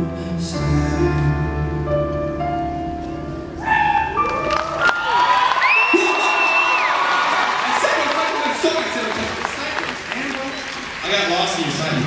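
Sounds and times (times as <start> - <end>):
high screams and whoops: 3.8 - 8.4
audience cheering and applauding: 3.9 - 12.0.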